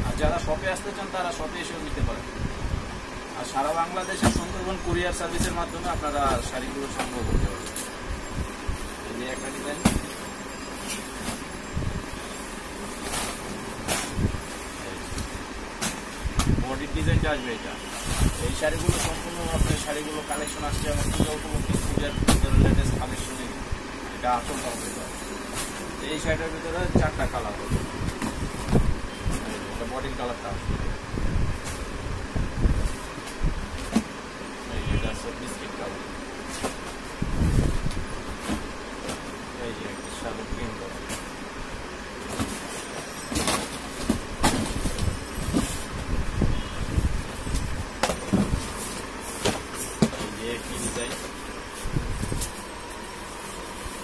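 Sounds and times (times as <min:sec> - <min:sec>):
steady background noise: 0:00.0 - 0:54.0
cardboard boxes being handled: 0:04.0 - 0:16.6, 0:17.7 - 0:23.6, 0:24.4 - 0:26.5, 0:36.4 - 0:39.6, 0:40.6 - 0:46.3, 0:47.0 - 0:54.0.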